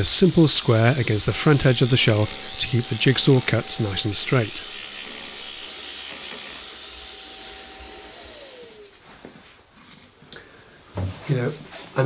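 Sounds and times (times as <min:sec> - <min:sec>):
jigsaw motor running: 0:00.0 - 0:09.0.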